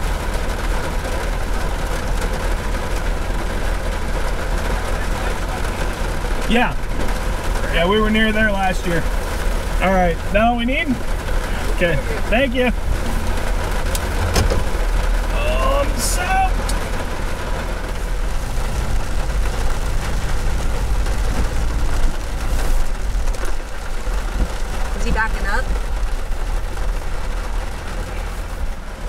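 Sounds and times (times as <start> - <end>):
heavy rain on truck roof: 0.0 - 29.0
truck engine rumbling: 0.0 - 29.0.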